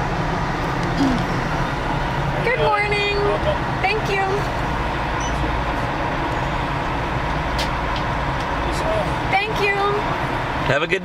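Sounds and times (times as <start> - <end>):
car engines idling: 0.0 - 11.0.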